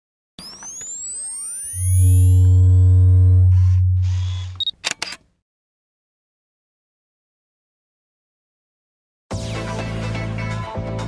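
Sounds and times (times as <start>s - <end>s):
rising synthetic sweeps: 0.5s - 4.0s
deep hum: 1.7s - 4.5s.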